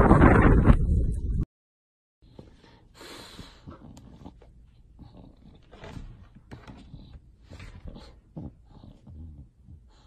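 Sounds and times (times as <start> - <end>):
dog growling: 3.6 - 10.0.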